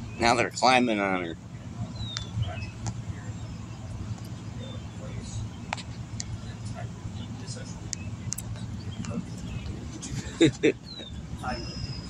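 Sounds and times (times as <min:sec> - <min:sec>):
faint chirps and ticks: 0:01.4 - 0:09.8.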